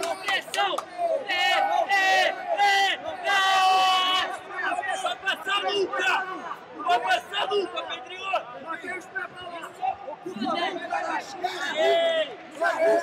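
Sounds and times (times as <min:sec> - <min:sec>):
arena crowd: 0:00.0 - 0:13.0.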